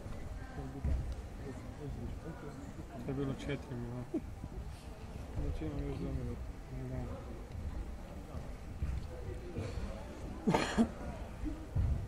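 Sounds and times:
person coughing: 10.5s - 11.0s.

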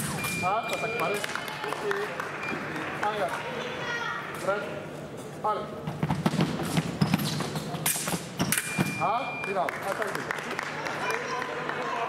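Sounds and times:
voices calling out in a hall: 0.0s - 5.8s, 8.5s - 12.0s.

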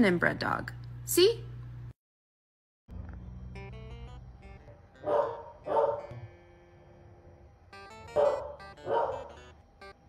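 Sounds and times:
background music: 3.0s - 10.0s
dog barking: 5.0s - 6.1s, 8.1s - 9.4s.

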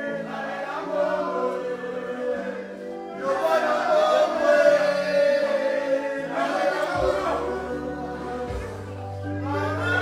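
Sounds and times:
choir singing long notes: 0.0s - 10.0s.

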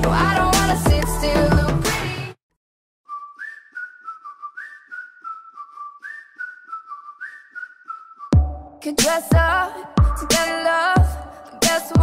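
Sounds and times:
pop beat with bass: 0.0s - 2.4s, 8.3s - 12.0s
whistled melody: 3.0s - 8.9s.

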